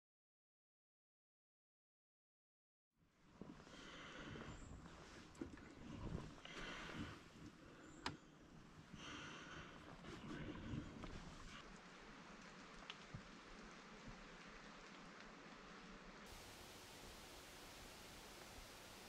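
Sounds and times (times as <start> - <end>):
faint outdoor hiss: 3.0 - 19.0
soft rustling: 3.3 - 7.8, 8.7 - 14.3.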